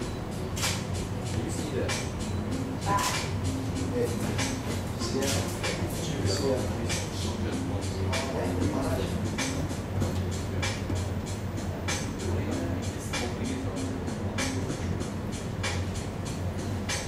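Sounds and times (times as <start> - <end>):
music: 0.0 - 17.0
soft hissing beat: 0.0 - 17.0
steady low hum: 0.0 - 17.0
faint voices: 1.4 - 15.3.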